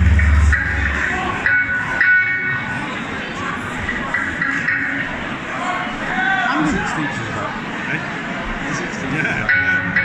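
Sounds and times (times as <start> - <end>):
rock band playing live: 0.0 - 2.4
ringing electric guitar notes: 0.0 - 2.6.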